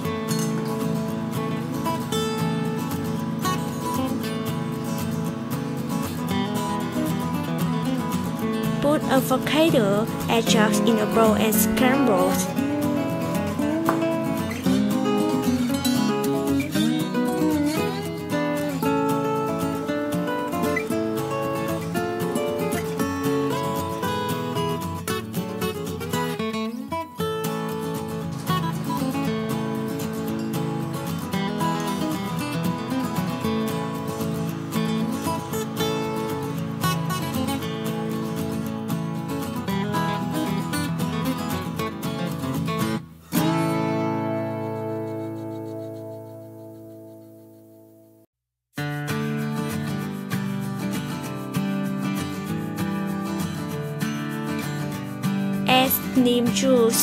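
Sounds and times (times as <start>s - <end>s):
acoustic guitar plucked and strummed: 0.0s - 57.0s.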